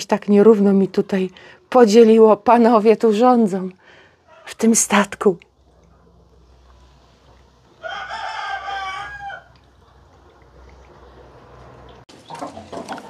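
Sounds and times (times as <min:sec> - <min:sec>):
rooster crowing: 0:07.8 - 0:09.6.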